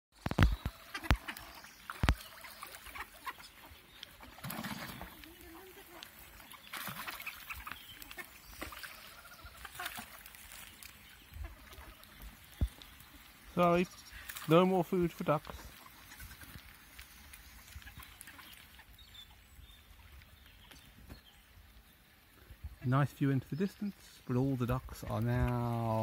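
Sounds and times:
ducks calling: 0:00.3 - 0:19.5.

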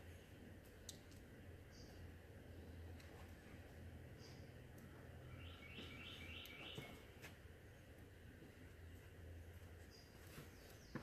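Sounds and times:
faint sharp clicks: 0:00.8 - 0:01.2.

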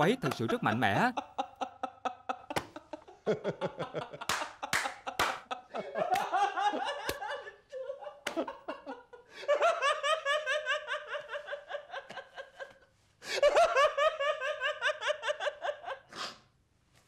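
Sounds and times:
men laughing heartily: 0:00.0 - 0:16.1
sharp gasping breaths: 0:16.1 - 0:16.5.

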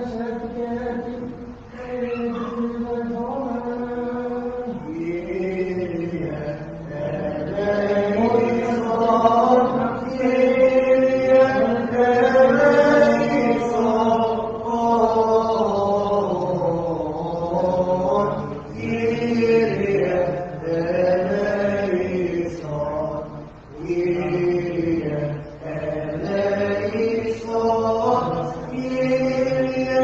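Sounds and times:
voices singing liturgical chant: 0:00.0 - 0:30.0.

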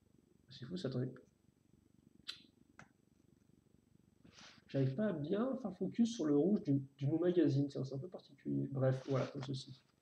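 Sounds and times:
brief hiss: 0:09.0 - 0:09.5.

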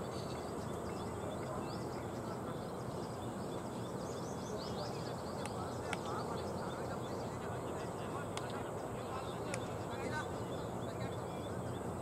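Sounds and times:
birds chirping and calling: 0:00.0 - 0:12.0
steady background noise: 0:00.0 - 0:12.0.

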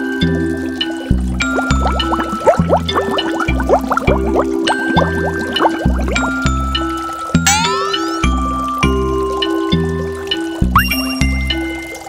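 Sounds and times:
quick rising bloops: 0:01.5 - 0:06.6, 0:07.4 - 0:08.5.

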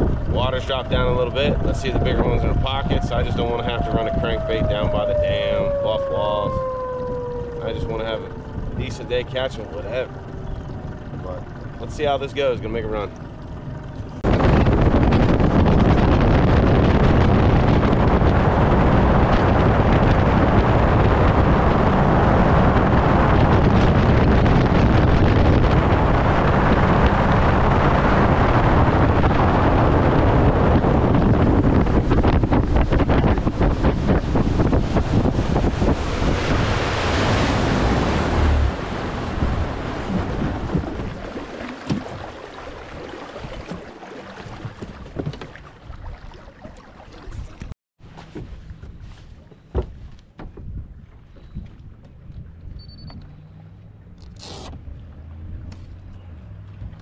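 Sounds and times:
wind buffeting microphone: 0:00.0 - 0:47.8, 0:48.4 - 0:53.4
outboard motor: 0:00.0 - 0:57.0
water rushing: 0:00.6 - 0:14.3, 0:30.4 - 0:47.8.

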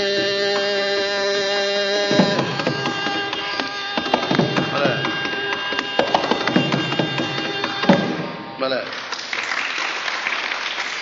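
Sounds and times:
drum strokes with bending bass: 0:02.1 - 0:08.2.

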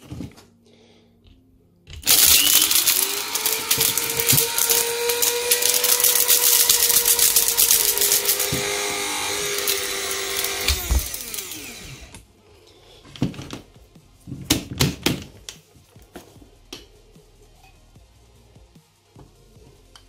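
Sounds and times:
plastic pieces rattling: 0:02.0 - 0:11.6
coffee grinder grinding plastic: 0:02.0 - 0:12.2.

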